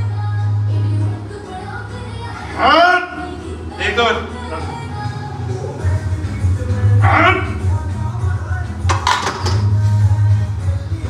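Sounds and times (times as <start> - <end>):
background music with bass beat: 2.0 - 11.0.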